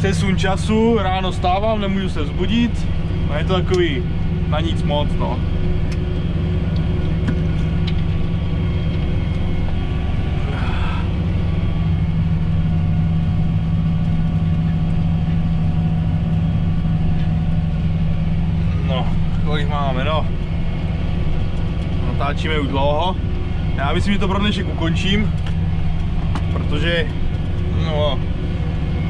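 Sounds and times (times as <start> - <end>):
tractor diesel engine droning: 0.0 - 29.0.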